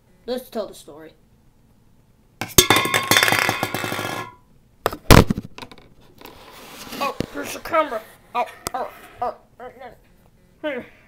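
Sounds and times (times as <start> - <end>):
rattling and clinking: 2.4 - 4.4.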